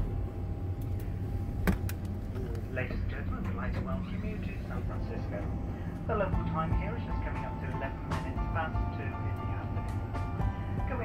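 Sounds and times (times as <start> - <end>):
airliner cabin rumble: 0.0 - 11.0.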